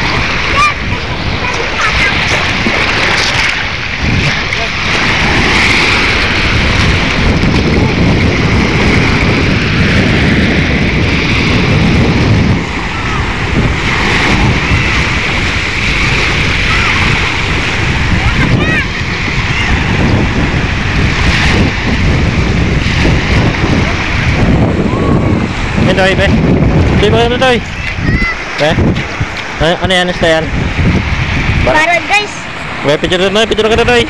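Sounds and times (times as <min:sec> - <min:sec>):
waves washing onto pebbles: 0:00.0 - 0:34.0
wind buffeting microphone: 0:00.0 - 0:34.0.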